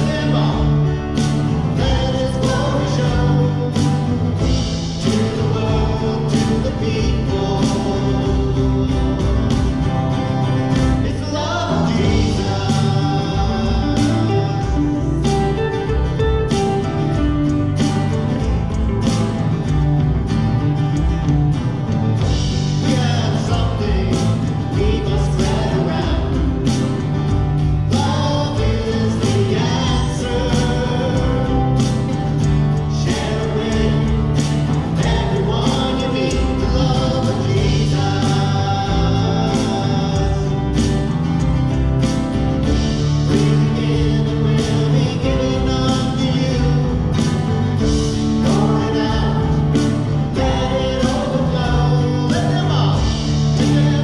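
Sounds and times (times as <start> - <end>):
voices singing together: 0.0 - 18.9, 22.2 - 54.0
band playing: 0.0 - 54.0
strummed acoustic guitar: 0.0 - 54.0.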